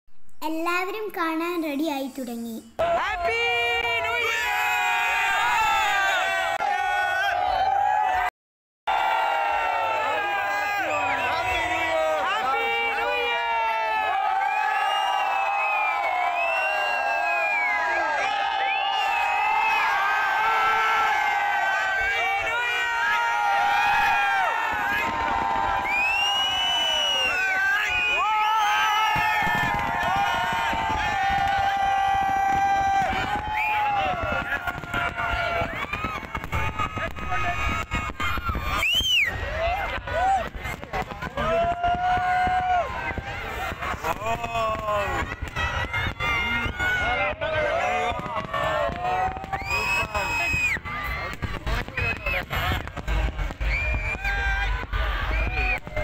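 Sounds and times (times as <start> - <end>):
crowd cheering and shouting: 2.8 - 8.3, 8.9 - 56.0
firework bangs: 19.0 - 56.0.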